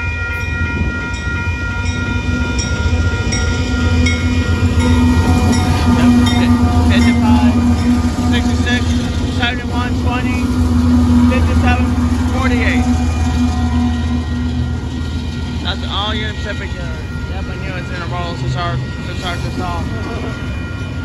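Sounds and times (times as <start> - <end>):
diesel locomotive engine drone: 0.0 - 21.0
freight cars rolling past: 0.0 - 21.0.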